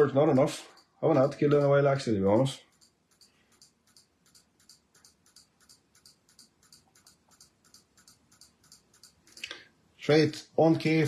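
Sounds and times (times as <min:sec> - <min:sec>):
computer mouse clicks: 0:02.6 - 0:09.6.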